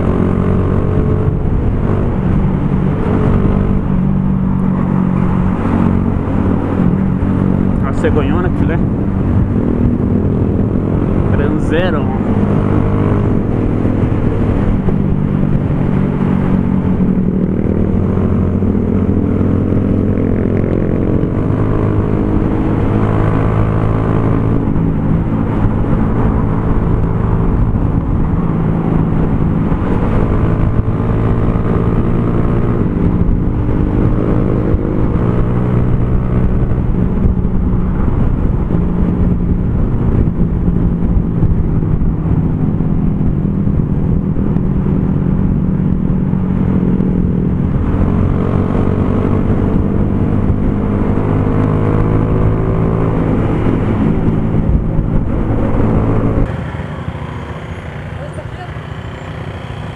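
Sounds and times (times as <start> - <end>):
wind rush on microphone: 0.0 - 56.6
motorcycle engine running: 0.0 - 59.9.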